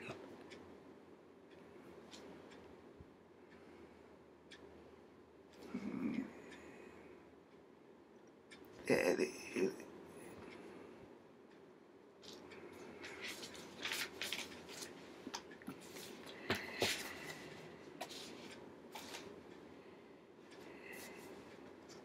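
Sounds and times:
paper rustling and crackling: 0:13.1 - 0:14.9.

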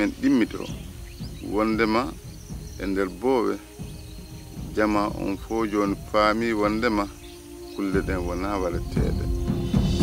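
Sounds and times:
man speaking: 0:00.0 - 0:00.8, 0:01.4 - 0:02.2, 0:02.8 - 0:03.7, 0:04.7 - 0:07.2, 0:07.8 - 0:09.3
insects chirring: 0:00.0 - 0:10.0.

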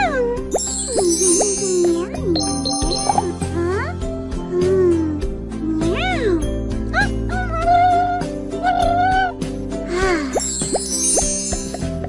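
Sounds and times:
playful music with sliding-pitch effects: 0:00.5 - 0:04.0, 0:10.1 - 0:12.0.

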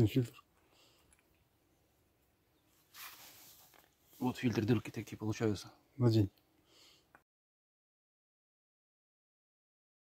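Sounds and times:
rustle of person moving: 0:02.7 - 0:05.2.

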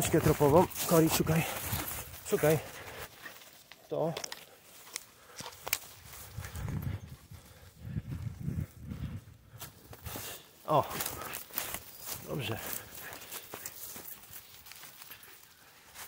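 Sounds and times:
twigs cracking: 0:00.0 - 0:06.6, 0:09.7 - 0:16.0
footsteps crunching dry leaves: 0:00.0 - 0:07.5, 0:09.5 - 0:16.0.

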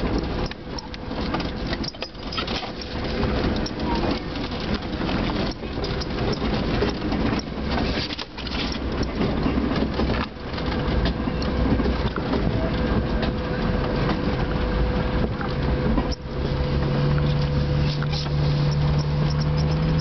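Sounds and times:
engine running at low speed: 0:00.0 - 0:20.0
vehicle body knocking and rattling: 0:00.0 - 0:20.0.

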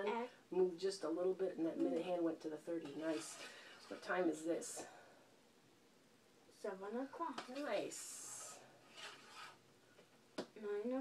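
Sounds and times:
clock hands rubbing: 0:07.6 - 0:09.6.

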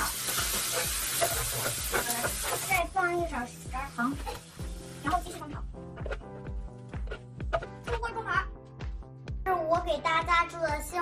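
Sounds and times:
food sizzling in a skillet: 0:00.0 - 0:07.6
background music with a beat: 0:04.4 - 0:11.0.

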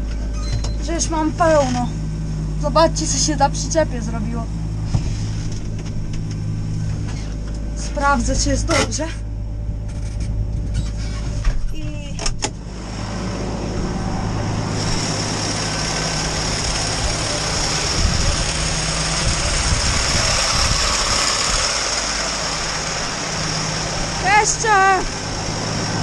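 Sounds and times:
tractor engine idling: 0:11.9 - 0:26.0.

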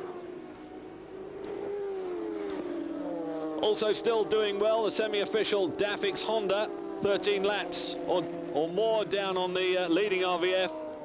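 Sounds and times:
racing motorcycle engines: 0:00.0 - 0:11.0.

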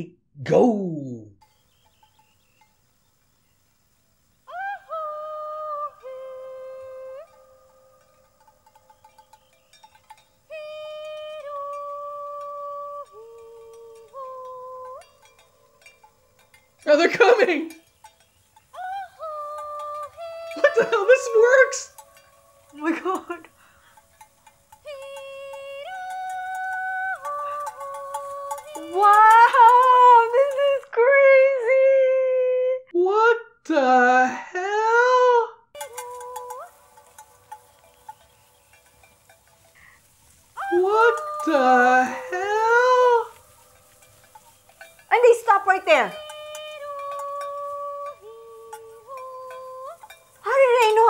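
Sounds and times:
woman singing high herding calls: 0:01.6 - 0:32.9, 0:34.8 - 0:51.0.

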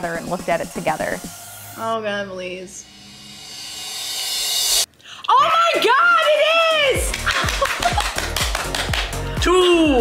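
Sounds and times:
hissing riser effect: 0:00.0 - 0:04.9.

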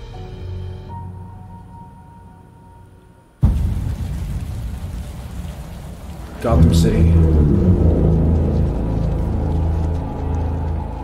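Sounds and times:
deep rumble: 0:03.4 - 0:11.0
steady rain: 0:03.4 - 0:11.0
low drone: 0:05.0 - 0:11.0.

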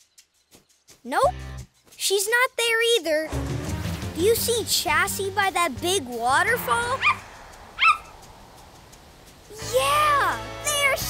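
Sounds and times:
cartoon puppy yip: 0:07.0 - 0:07.2, 0:07.8 - 0:08.1.

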